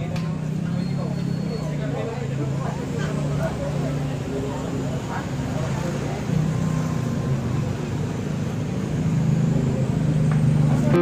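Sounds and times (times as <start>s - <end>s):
faint voices: 0.0s - 11.0s
vehicle engine running: 0.0s - 11.0s.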